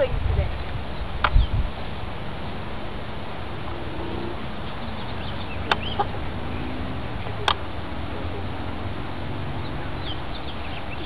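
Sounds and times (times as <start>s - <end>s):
outdoor background noise: 0.0s - 11.0s
faint bird calls: 3.7s - 8.5s.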